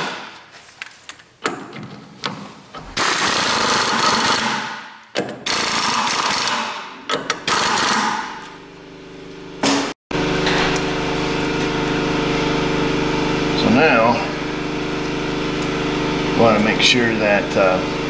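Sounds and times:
pneumatic air hammer: 2.8s - 8.6s, 9.6s - 11.6s.

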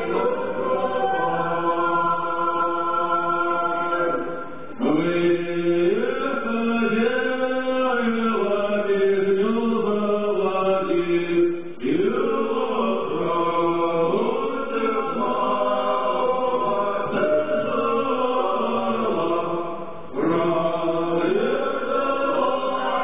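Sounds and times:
voices singing slow chant: 0.0s - 23.0s.

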